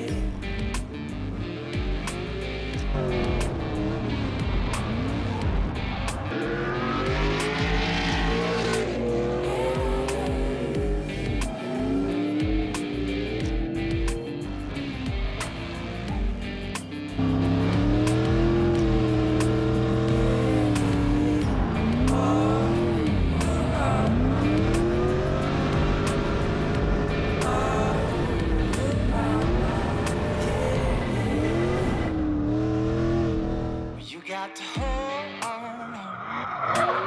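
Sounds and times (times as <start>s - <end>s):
music: 0.0s - 37.0s
car engine revving hard: 2.2s - 16.3s, 17.2s - 34.0s.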